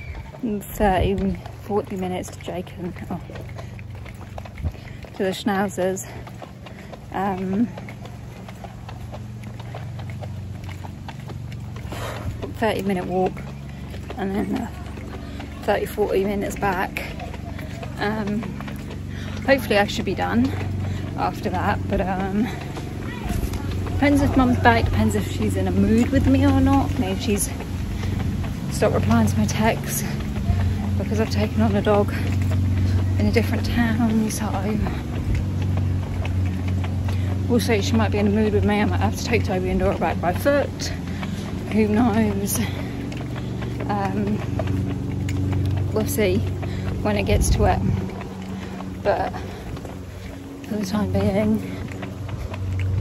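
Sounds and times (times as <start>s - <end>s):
footsteps on pavement: 0.0s - 53.0s
low engine hum: 0.0s - 53.0s
wind rumble on microphone: 21.6s - 53.0s.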